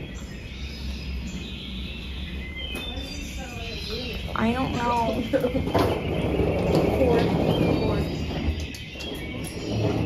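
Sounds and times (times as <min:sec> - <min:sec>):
suitcase wheels rumbling on floor: 0:04.0 - 0:10.0.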